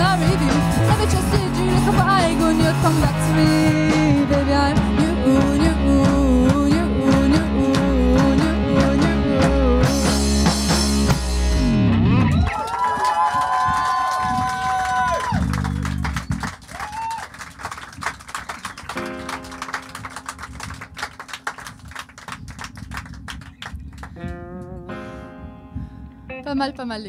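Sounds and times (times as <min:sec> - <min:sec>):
live band with electric guitar: 0:00.0 - 0:26.7
audience clapping: 0:12.3 - 0:24.4.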